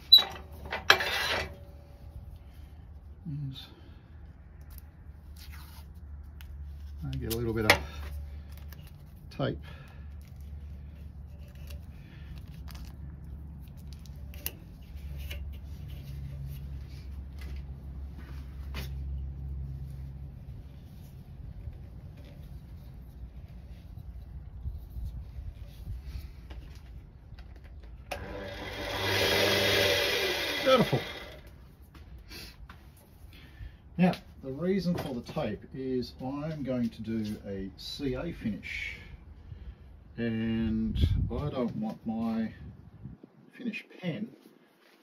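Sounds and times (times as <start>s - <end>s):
tape handling clicks and rustles: 4.5s - 17.8s, 21.1s - 28.3s.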